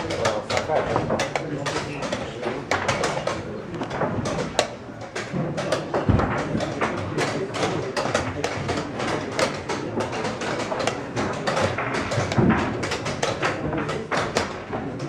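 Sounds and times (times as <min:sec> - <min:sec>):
chess pieces set on board: 0:00.0 - 0:15.0.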